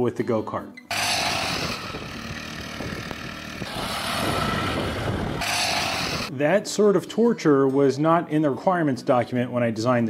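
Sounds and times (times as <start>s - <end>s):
gravel spraying: 0.9s - 6.3s
small engine running: 0.9s - 6.3s.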